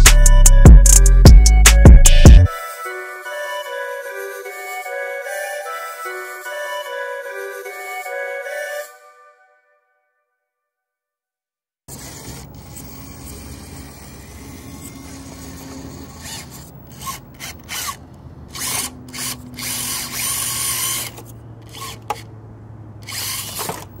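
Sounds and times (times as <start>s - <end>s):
rc car motor whirring: 11.9s - 22.4s, 23.0s - 24.0s.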